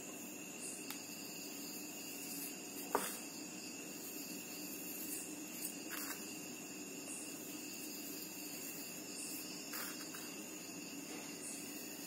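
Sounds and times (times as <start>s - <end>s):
insects trilling: 0.0s - 12.0s.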